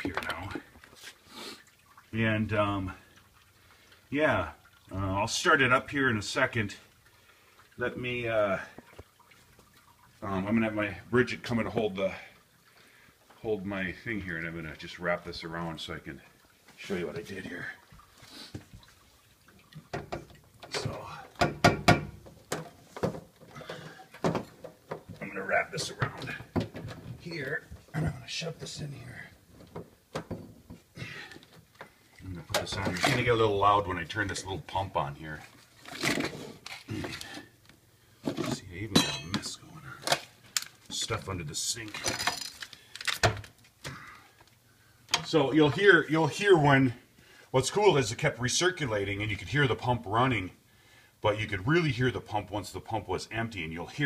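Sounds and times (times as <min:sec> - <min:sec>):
knocks clicks and rustles: 0:19.7 - 0:27.9
knocks and clatter in cabinet: 0:21.4 - 0:23.3, 0:24.2 - 0:25.2.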